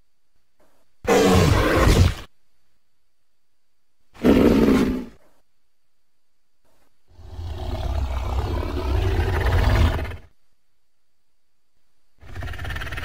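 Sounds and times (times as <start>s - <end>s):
deep creature call: 7.1s - 10.3s, 12.2s - 13.0s.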